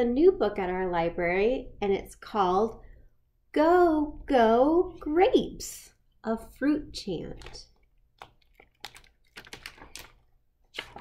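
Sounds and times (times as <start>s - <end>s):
book cover clicks and paper rustles: 7.4s - 11.0s.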